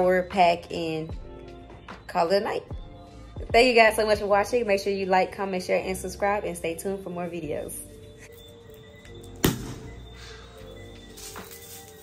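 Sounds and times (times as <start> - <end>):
background music: 0.0 - 12.0
champagne cork popping: 9.4 - 10.0.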